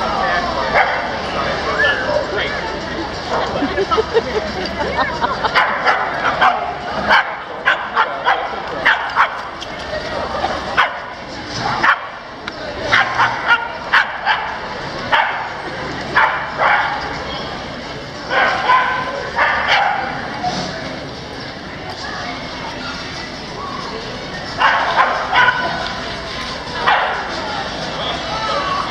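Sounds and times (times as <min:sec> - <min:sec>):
people talking: 0:00.0 - 0:28.9
dogs barking and yipping: 0:00.6 - 0:12.2, 0:12.8 - 0:17.6, 0:18.2 - 0:20.5, 0:24.5 - 0:26.0, 0:26.7 - 0:27.4.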